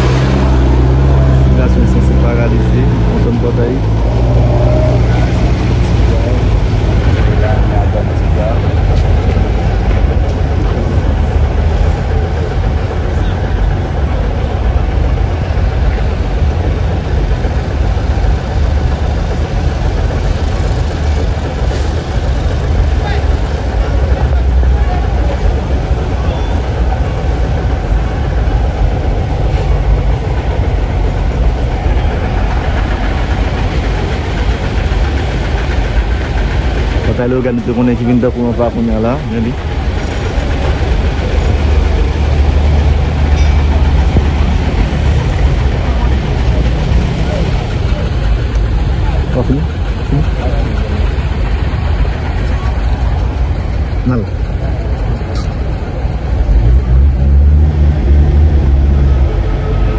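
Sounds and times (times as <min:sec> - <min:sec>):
faint voices: 0:00.0 - 0:59.9
road traffic rumble: 0:00.0 - 0:59.9.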